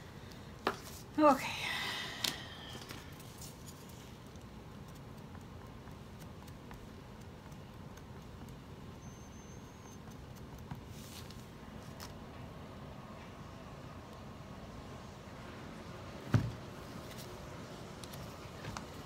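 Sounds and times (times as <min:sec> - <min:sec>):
soft rustle: 0:10.3 - 0:12.2.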